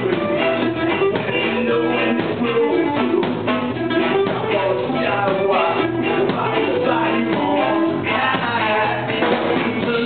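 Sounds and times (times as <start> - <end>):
live ska band playing: 0.0 - 10.0.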